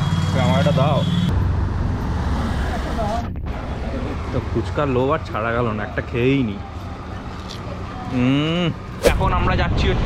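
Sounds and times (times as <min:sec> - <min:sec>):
road traffic rumble: 0:00.0 - 0:09.9.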